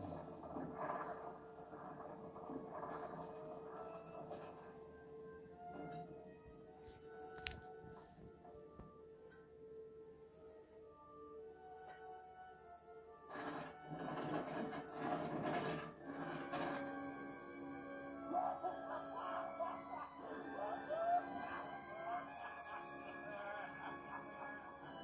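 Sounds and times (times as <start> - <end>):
film soundtrack music: 0.0 - 25.0
man laughing: 18.3 - 25.0.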